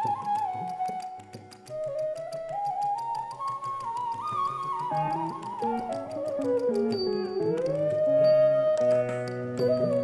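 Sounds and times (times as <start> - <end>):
bamboo flute melody: 0.0 - 10.0
light ticking beat: 0.0 - 10.0.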